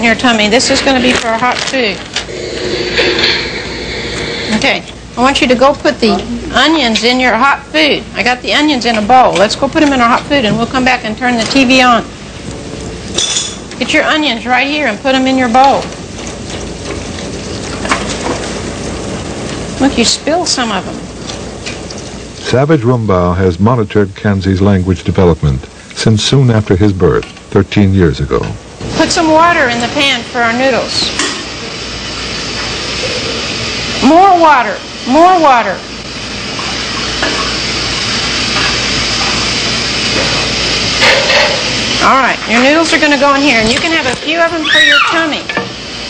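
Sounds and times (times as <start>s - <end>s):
onions sizzling in a pan: 0.0s - 23.3s, 28.7s - 46.0s
tap water filling a pot: 15.1s - 19.8s, 36.5s - 41.9s.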